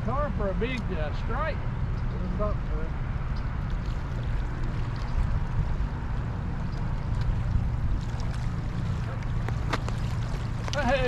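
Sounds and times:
wind on microphone: 0:02.9 - 0:11.0
river water rushing: 0:04.0 - 0:11.0.

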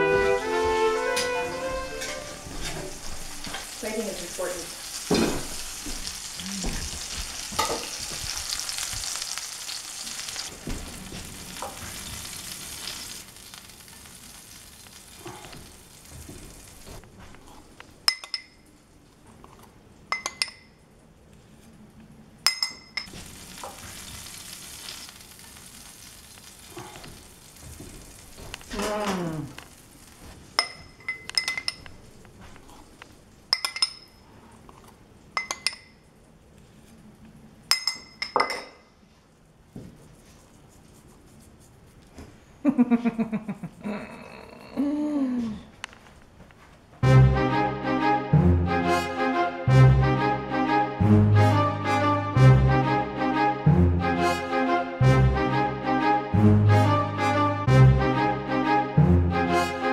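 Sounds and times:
dishes and utensils clinking: 0:00.1 - 0:03.7, 0:07.5 - 0:08.0, 0:18.0 - 0:18.7, 0:20.1 - 0:20.8, 0:22.4 - 0:23.8, 0:30.6 - 0:32.0, 0:33.5 - 0:34.3, 0:35.4 - 0:36.0, 0:37.7 - 0:38.9
food sizzling in a frying pan: 0:01.0 - 0:17.0, 0:23.1 - 0:31.6.

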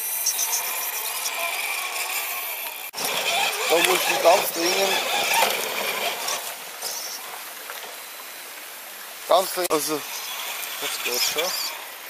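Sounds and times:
toy car motor and gears whirring: 0:00.0 - 0:07.2, 0:09.5 - 0:12.0
stream rushing: 0:03.0 - 0:12.0.

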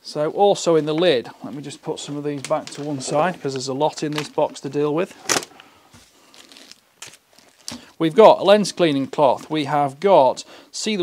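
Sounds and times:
plastic bags rustling: 0:00.6 - 0:09.6.

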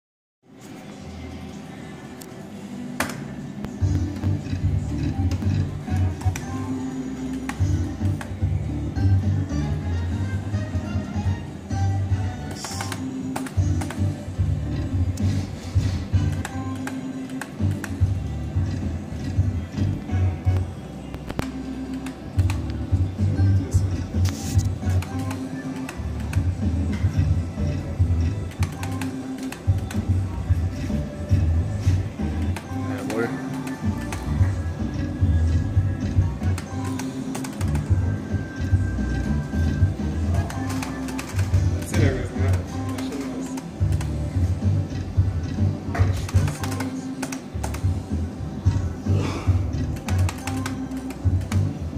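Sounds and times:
slot machine music with pulsing bass: 0:03.8 - 0:51.9.

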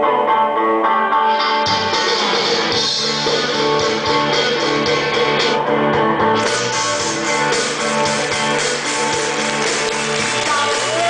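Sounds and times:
strummed guitar chords: 0:00.0 - 0:11.0
live band music: 0:00.8 - 0:11.0.

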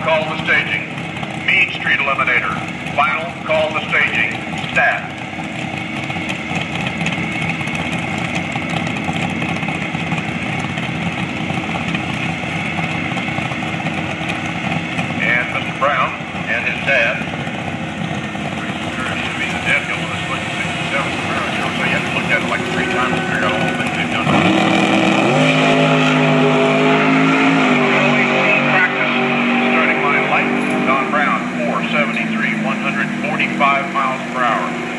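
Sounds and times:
engine revving: 0:00.0 - 0:34.9
vehicle engines running: 0:00.0 - 0:34.9.

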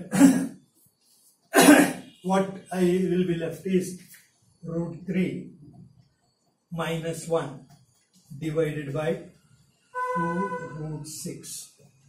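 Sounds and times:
man coughing: 0:00.0 - 0:00.5, 0:01.6 - 0:02.1.

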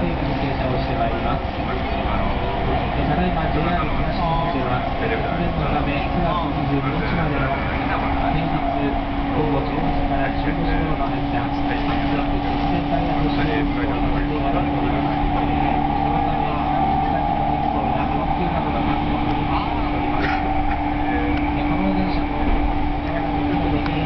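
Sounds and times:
train wheels rumbling on rails: 0:00.0 - 0:24.0.

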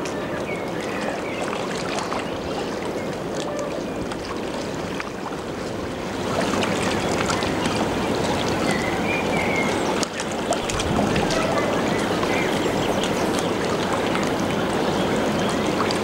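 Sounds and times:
water rushing from ship wash: 0:00.0 - 0:16.0
wind on microphone: 0:06.0 - 0:16.0.

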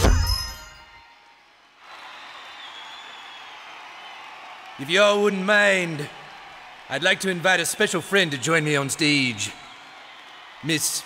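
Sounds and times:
crowd applauding and cheering: 0:00.0 - 0:11.0.

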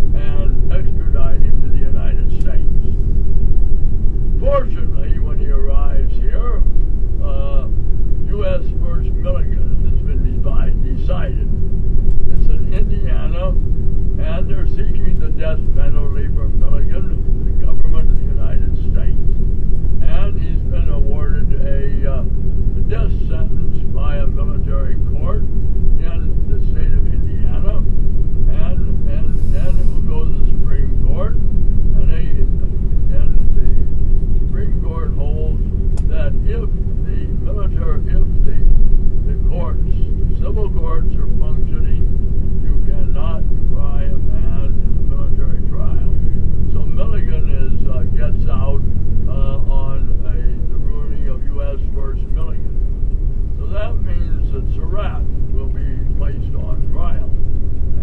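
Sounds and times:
indistinct voices talking: 0:00.0 - 0:03.3, 0:04.1 - 0:57.4
vehicle rumble and hum: 0:00.0 - 0:58.0.

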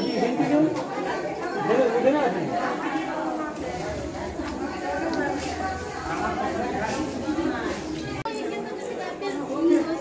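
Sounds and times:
crowd conversation: 0:00.0 - 0:10.0.

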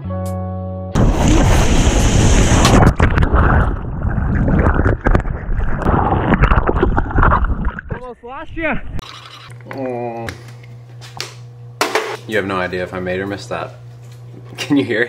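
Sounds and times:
wind noise: 0:01.0 - 0:09.0.

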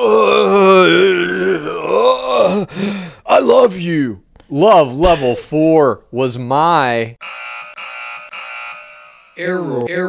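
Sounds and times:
electronic alarm buzzer: 0:07.2 - 0:09.7.

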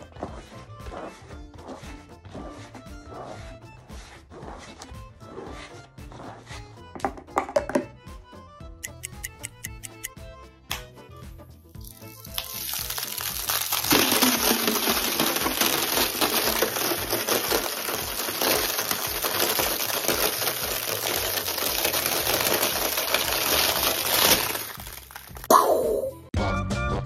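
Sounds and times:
dense crackling and sizzling: 0:11.8 - 0:25.5.

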